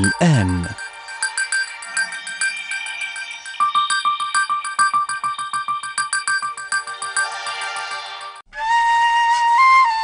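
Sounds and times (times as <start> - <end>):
bright bell-like synthesizer notes: 0.0 - 8.4.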